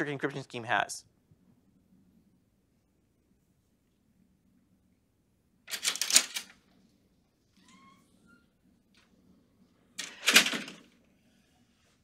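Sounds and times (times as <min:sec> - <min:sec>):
faint rising squeak: 0:07.6 - 0:08.7.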